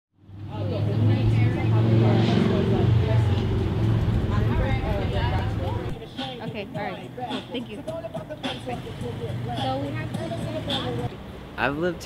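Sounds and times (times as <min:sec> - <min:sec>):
vehicle engine humming: 0:00.2 - 0:12.0
people talking in background: 0:00.4 - 0:11.2.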